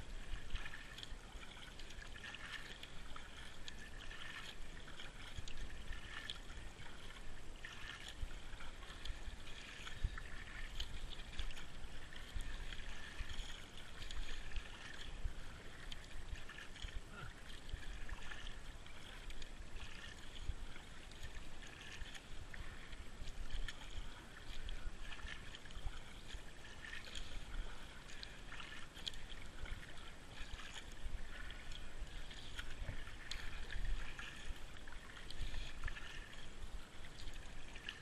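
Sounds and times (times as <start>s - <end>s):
kayak paddle swishing and splashing: 0.0s - 38.0s.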